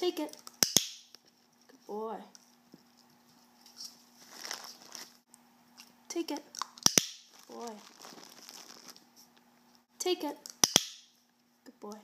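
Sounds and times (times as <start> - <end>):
plastic bottle rustling and handling: 4.1 - 5.2, 7.3 - 9.1.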